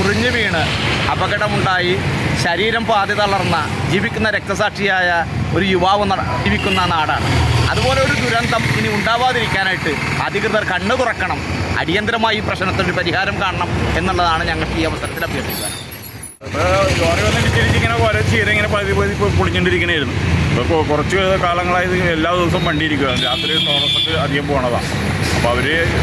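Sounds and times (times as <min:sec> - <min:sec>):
man speaking: 0:00.0 - 0:15.8, 0:16.4 - 0:26.0
road traffic rumble: 0:00.0 - 0:26.0.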